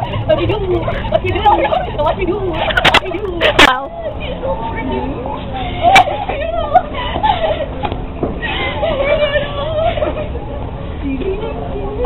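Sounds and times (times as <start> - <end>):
girl laughing: 0.0 - 10.6.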